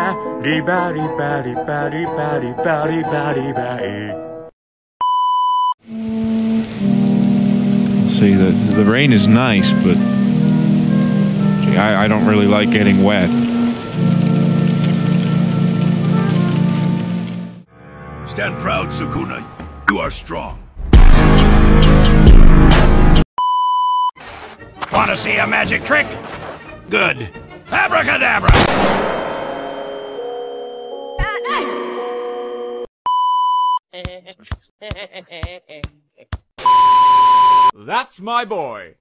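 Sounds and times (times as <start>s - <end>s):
music with held tones: 5.9s - 17.6s
loud bass-heavy music: 20.9s - 23.2s
high test-pattern beep: 36.6s - 37.7s.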